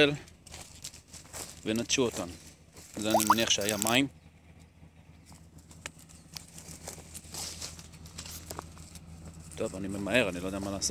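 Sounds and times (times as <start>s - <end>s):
footsteps in grass: 0.3s - 3.0s.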